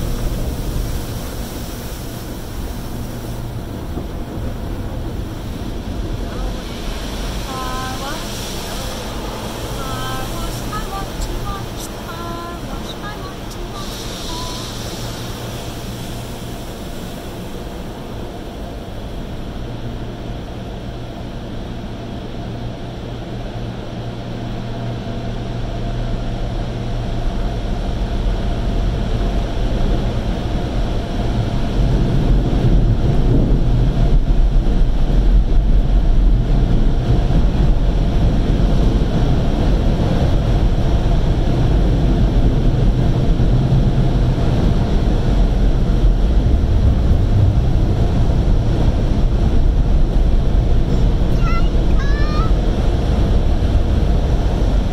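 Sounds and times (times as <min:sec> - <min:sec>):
car wash machinery rumbling: 0:00.0 - 0:54.9.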